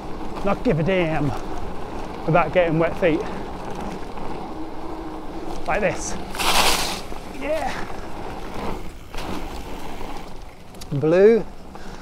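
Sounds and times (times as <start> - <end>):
bike clicks and rattles: 0.0 - 12.0
bike tyres rushing over ground: 0.0 - 12.0.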